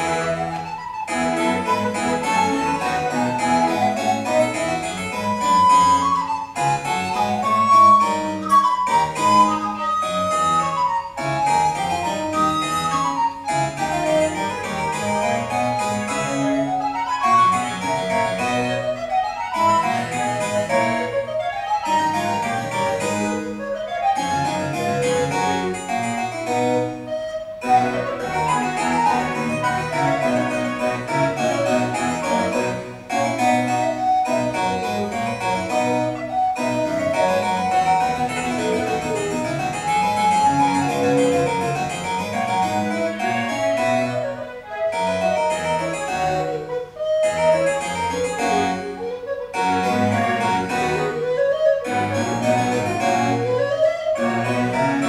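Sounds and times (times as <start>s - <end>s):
harpsichord accompaniment: 0.0s - 55.0s
recorder melody: 0.0s - 55.0s.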